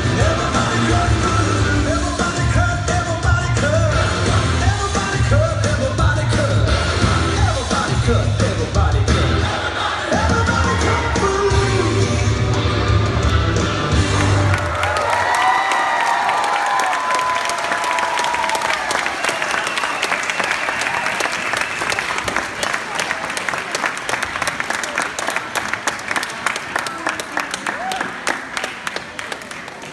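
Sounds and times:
dance music: 0.0s - 15.0s
audience applauding and cheering: 10.1s - 29.9s.

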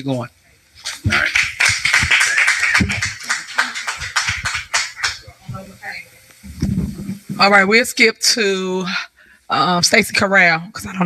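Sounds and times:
room noise: 0.0s - 11.0s
indistinct voices: 0.8s - 7.8s.

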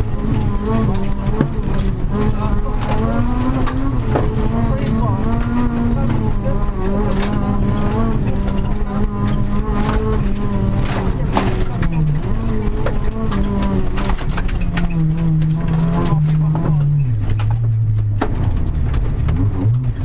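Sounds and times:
rally car engine running hard: 0.0s - 20.0s.

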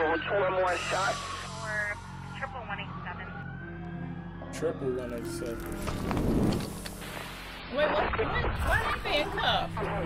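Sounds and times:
emergency siren wailing: 0.0s - 7.4s.

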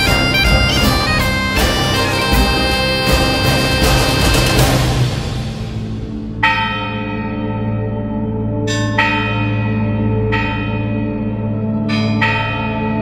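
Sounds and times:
church bells tolling: 0.0s - 13.0s
steady low drone: 0.0s - 13.0s.

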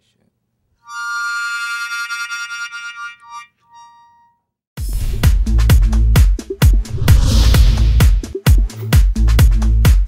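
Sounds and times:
harmonica chord: 0.8s - 4.4s.

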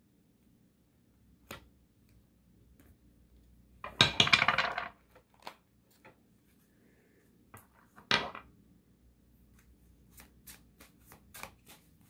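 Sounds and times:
cards being riffled: 10.1s - 12.0s.

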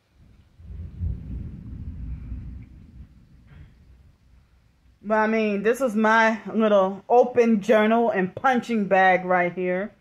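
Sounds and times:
thunder rumbling: 0.0s - 5.8s.

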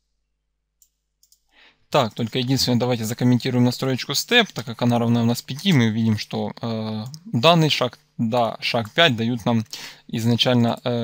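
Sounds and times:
soft breath: 1.5s - 1.9s, 9.7s - 10.1s
man speaking: 1.9s - 11.0s.

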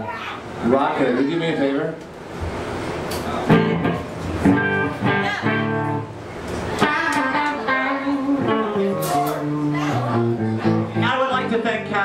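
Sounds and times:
electric guitar noodling: 3.3s - 12.0s.

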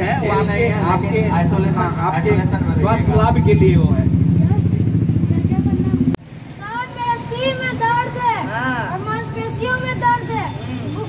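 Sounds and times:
vehicle engine running: 0.0s - 6.2s.

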